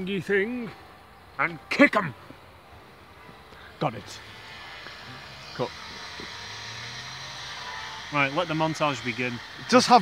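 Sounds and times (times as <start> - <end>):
low engine hum: 3.9 - 10.0.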